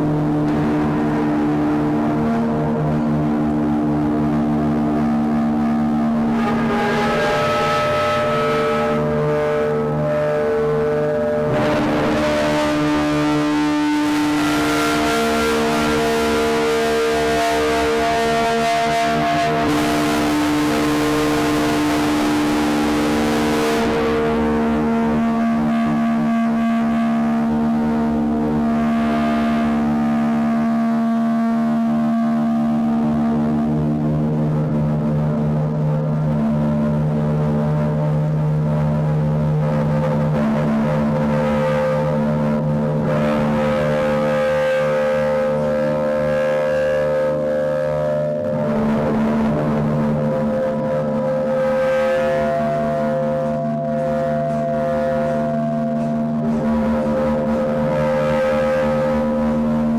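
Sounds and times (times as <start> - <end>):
bowed electric guitar drone: 0.0 - 59.9.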